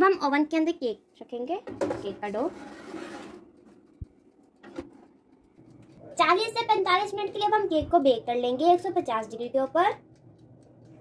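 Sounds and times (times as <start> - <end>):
pot thump on rack: 1.7 - 2.1
pot scraping on wire rack: 1.8 - 3.5.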